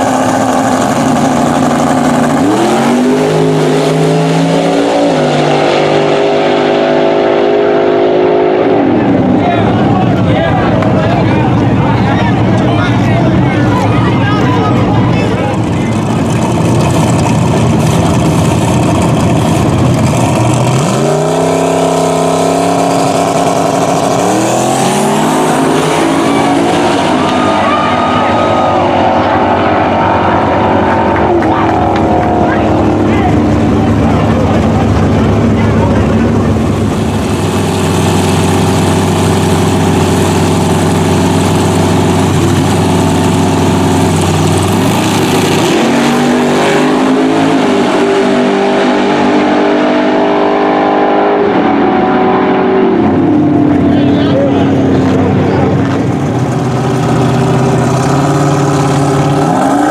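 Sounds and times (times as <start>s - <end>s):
race cars at full throttle: 0.0s - 59.9s.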